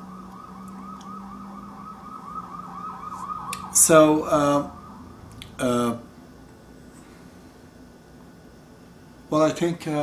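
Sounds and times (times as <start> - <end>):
emergency siren yelping: 0.0 - 5.6
low steady hum: 0.0 - 10.0
man talking: 3.6 - 4.7, 5.6 - 6.1, 9.3 - 10.0.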